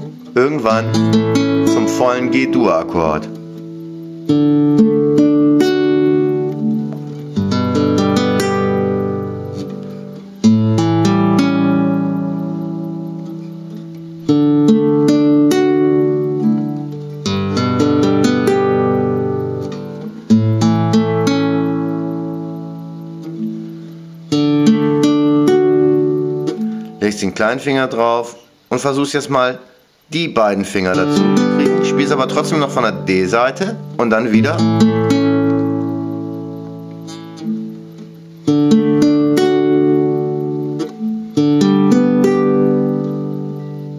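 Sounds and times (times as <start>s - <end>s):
classical guitar chords picked: 0.0s - 43.9s.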